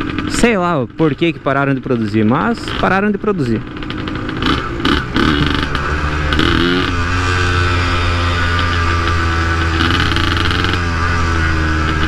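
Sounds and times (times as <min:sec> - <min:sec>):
two-stroke motorcycle engine running: 0:00.0 - 0:12.0.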